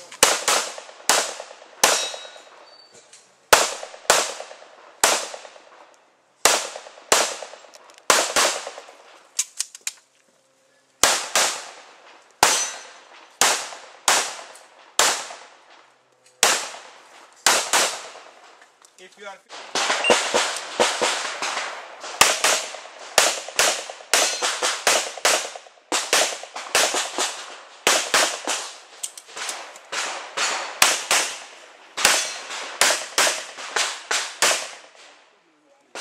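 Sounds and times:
pistol shots: 0.0 - 2.5, 3.5 - 5.7, 6.4 - 8.9, 11.0 - 15.6, 16.4 - 18.4, 19.5 - 35.1.

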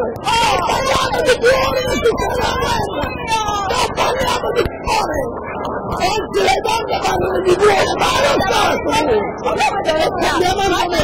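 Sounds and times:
people shouting and crying out: 0.0 - 11.0.

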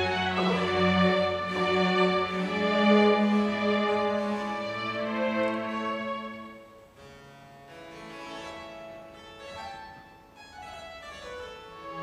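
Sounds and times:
string orchestra: 0.0 - 12.0.

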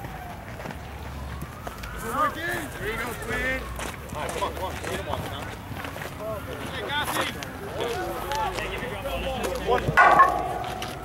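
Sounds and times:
people shouting and chattering: 6.8 - 11.0.

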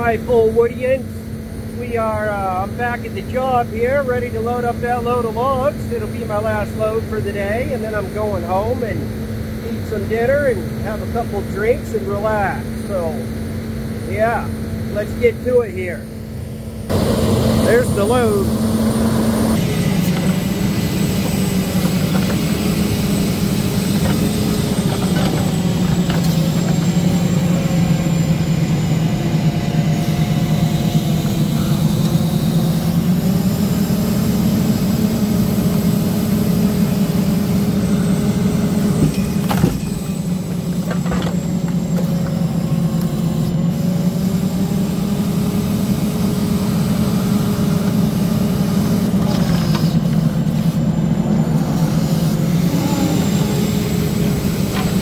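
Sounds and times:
diesel truck engine running: 0.0 - 55.0.

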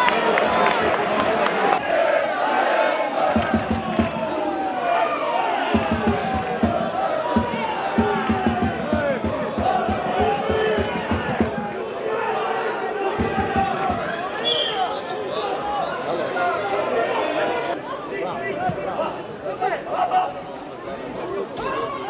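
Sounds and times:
stadium crowd chanting: 0.0 - 17.9
low thudding beat: 3.3 - 4.4, 5.7 - 11.9, 13.2 - 14.3.

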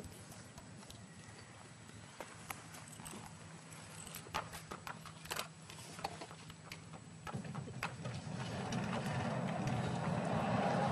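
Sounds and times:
horse hooves clip-clopping: 0.0 - 5.4.

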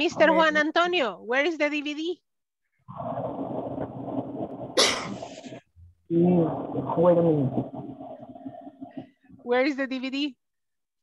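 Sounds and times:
microphone background noise: 2.9 - 9.5
person coughing: 4.8 - 5.2.

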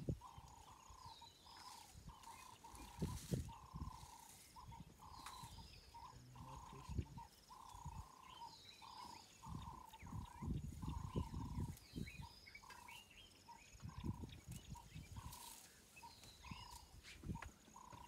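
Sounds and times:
birds calling: 0.0 - 18.0.

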